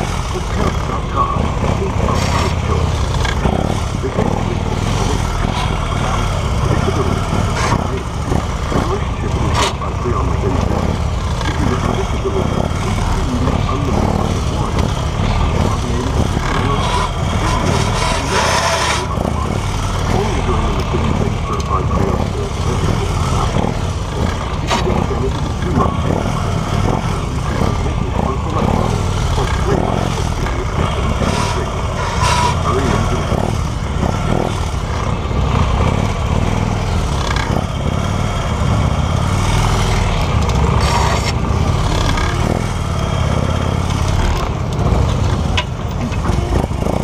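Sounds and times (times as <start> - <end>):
motorcycle engine running: 0.0 - 47.0.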